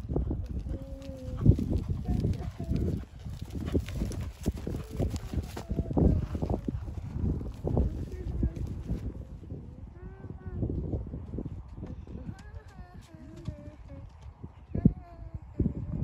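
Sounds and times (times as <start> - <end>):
horse hooves cantering on grass: 0.0 - 9.2.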